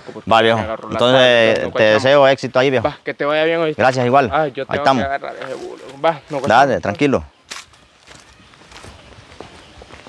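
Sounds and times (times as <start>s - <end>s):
footsteps on gritty road: 5.2s - 10.0s.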